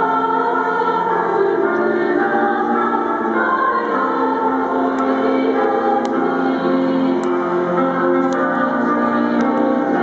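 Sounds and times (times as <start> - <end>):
choir singing over loudspeakers: 0.0 - 10.0.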